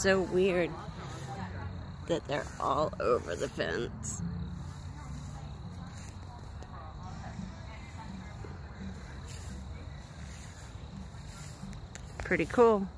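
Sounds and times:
faint indistinct voices: 0.0 - 12.9.

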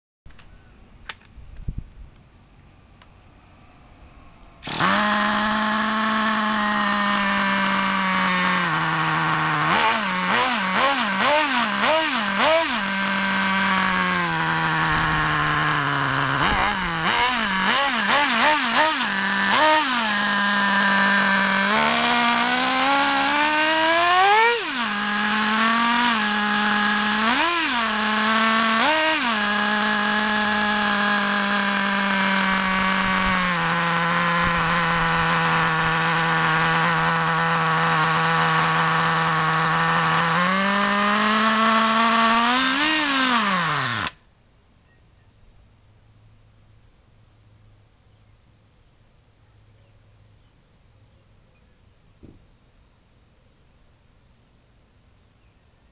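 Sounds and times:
model engine revving and idling: 4.4 - 44.2.

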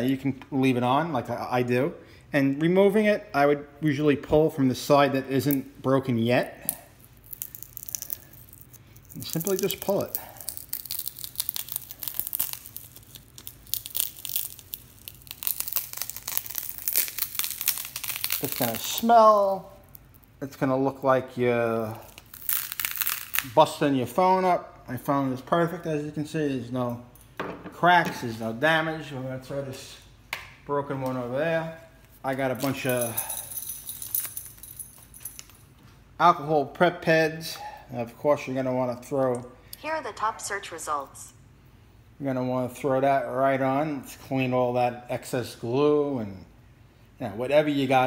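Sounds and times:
glass crackling and snapping: 6.7 - 19.1, 22.1 - 23.5.

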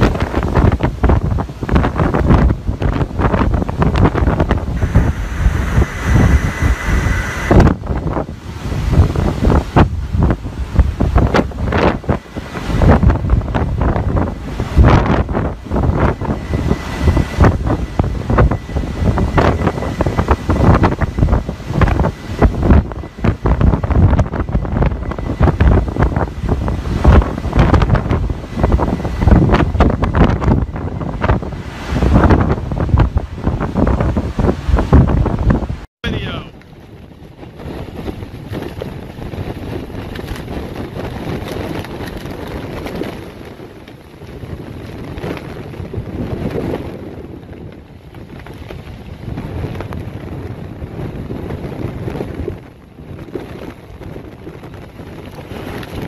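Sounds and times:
rain: 0.0 - 35.0, 36.6 - 56.0
gusty wind buffeting microphone: 0.0 - 56.0
rough sea: 0.0 - 56.0.

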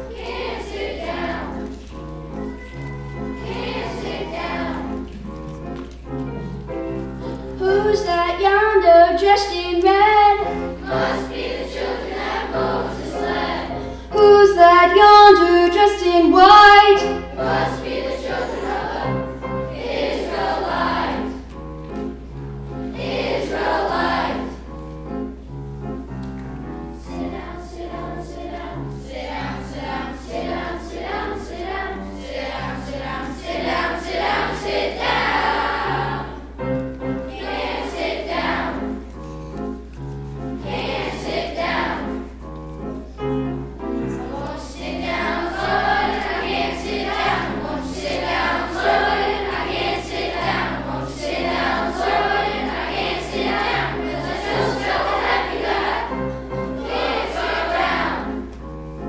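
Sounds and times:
children's choir singing: 0.0 - 59.0
piano accompaniment: 0.0 - 59.0.

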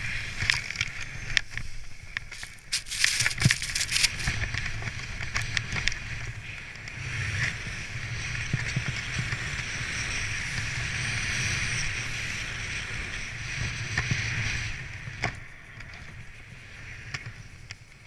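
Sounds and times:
small clicks: 0.4 - 6.0
snowboard hissing on snow: 1.2 - 4.5.

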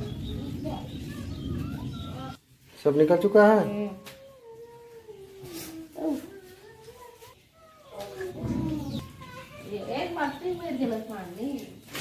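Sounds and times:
children calling and chattering: 0.0 - 11.9.

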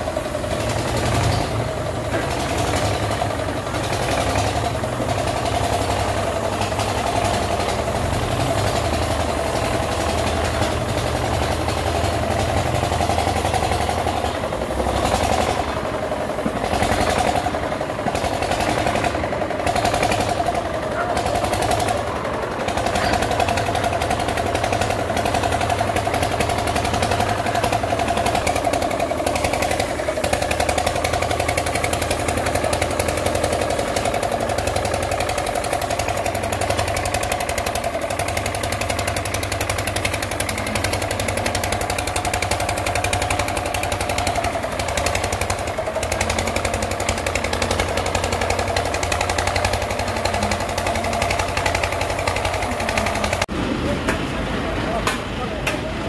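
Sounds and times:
engine whining and chugging: 0.0 - 56.0.

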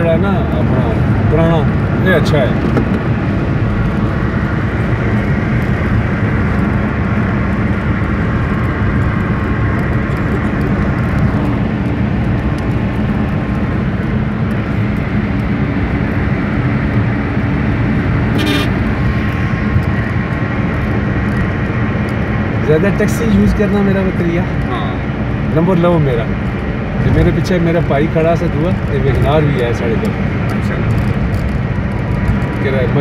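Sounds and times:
car road and engine rumble: 0.0 - 33.0.

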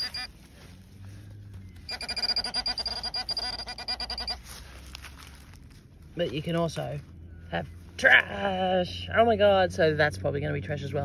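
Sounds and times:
pinpointer pulsing electronic tone: 0.0 - 0.4, 1.7 - 4.5.

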